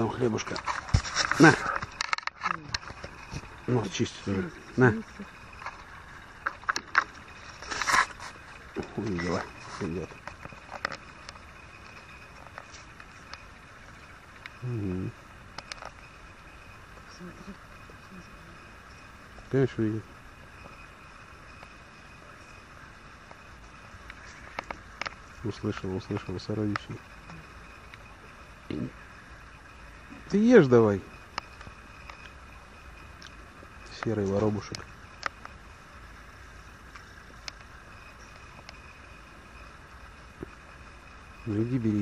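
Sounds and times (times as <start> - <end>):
outdoor background hiss: 0.0 - 42.0.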